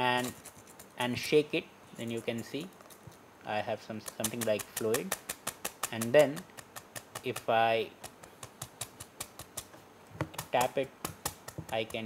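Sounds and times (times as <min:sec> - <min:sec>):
ball bearings clicking: 0:04.1 - 0:12.0.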